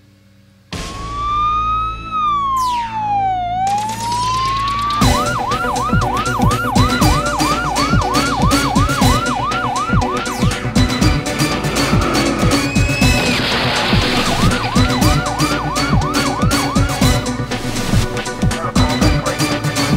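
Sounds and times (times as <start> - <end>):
steady music beat: 0.8 - 19.9
siren wailing and yelping: 0.9 - 18.0.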